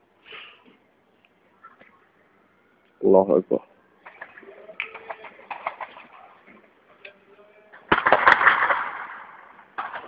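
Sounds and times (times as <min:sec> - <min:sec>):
distant gunfire cracks: 0:04.0 - 0:06.2, 0:07.9 - 0:10.0.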